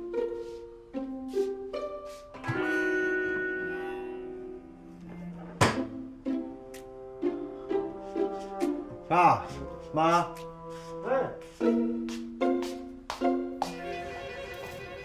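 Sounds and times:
pizzicato strings music: 0.0 - 15.0
held string chord: 0.9 - 15.0.

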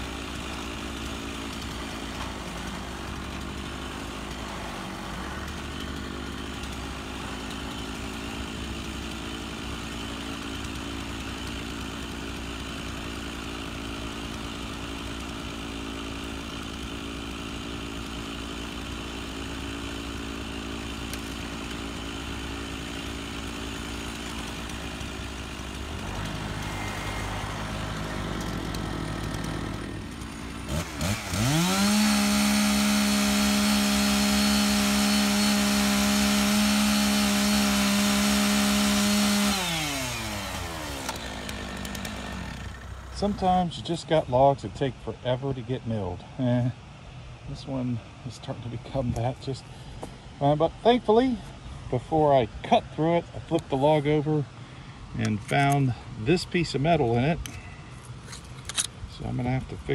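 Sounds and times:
chainsaw running: 0.0 - 44.3
tractor diesel engine running: 0.0 - 59.9.

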